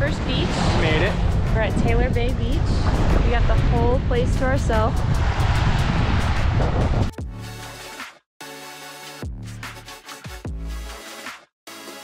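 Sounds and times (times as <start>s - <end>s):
wind buffeting microphone: 0.0s - 7.2s.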